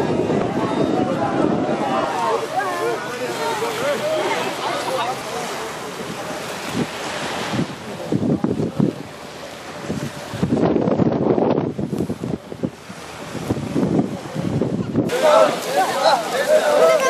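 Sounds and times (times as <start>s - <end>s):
small waves on sandy shore: 0.0s - 17.0s
wind buffeting microphone: 0.0s - 17.0s.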